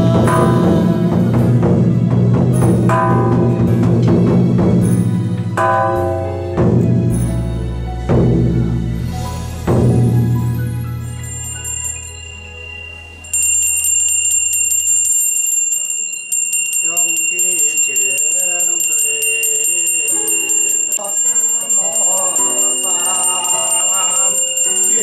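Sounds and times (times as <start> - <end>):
man chanting: 0.0 - 2.0
low music: 0.0 - 14.3
small hand bell ringing: 10.5 - 25.0.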